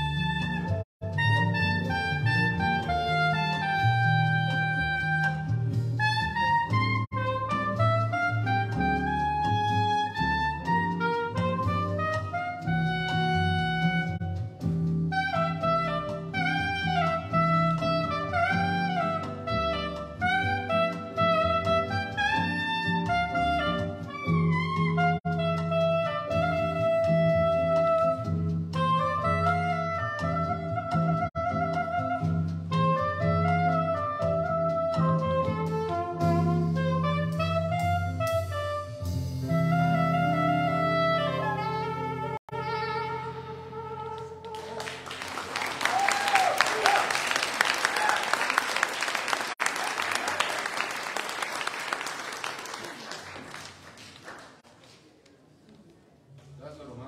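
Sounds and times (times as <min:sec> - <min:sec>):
backing track with bass line: 0:00.0 - 0:45.0
soprano saxophone melody: 0:00.0 - 0:45.2.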